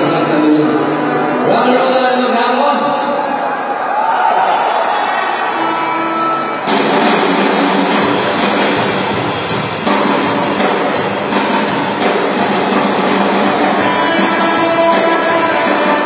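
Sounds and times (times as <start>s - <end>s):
electric guitar: 5.6s - 16.0s
drums with cymbals: 6.7s - 16.0s
bass guitar: 8.0s - 16.0s.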